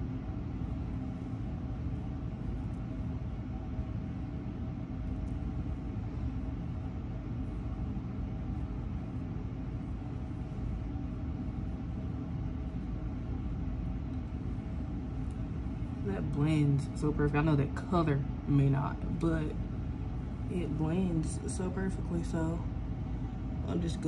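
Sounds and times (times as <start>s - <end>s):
hum of held tones: 0.0s - 24.0s
steady low rumble: 0.0s - 24.0s.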